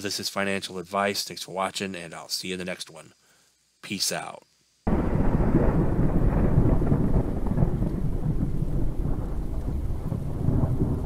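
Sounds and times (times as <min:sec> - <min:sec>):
low rumble of thunder: 0:04.9 - 0:11.0
steady rain: 0:04.9 - 0:11.0.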